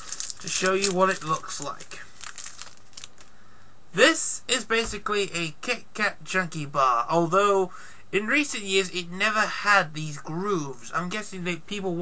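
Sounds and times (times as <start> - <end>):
foil wrapper crinkling: 0.0 - 3.3.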